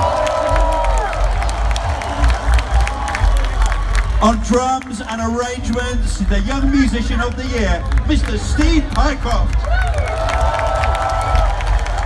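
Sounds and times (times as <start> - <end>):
crowd cheering: 0.0 - 12.0.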